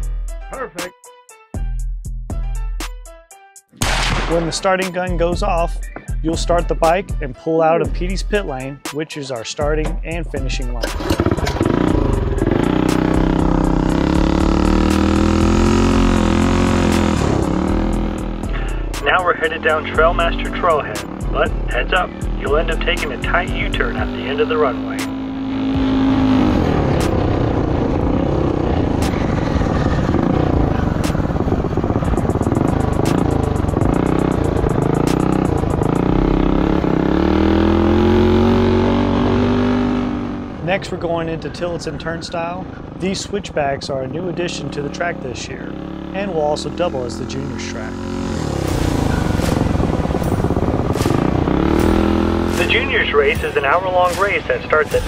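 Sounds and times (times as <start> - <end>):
background music with light beat: 0.0 - 27.3, 31.0 - 36.4, 49.4 - 55.0
minibike engine revving: 10.8 - 40.7, 42.5 - 54.2.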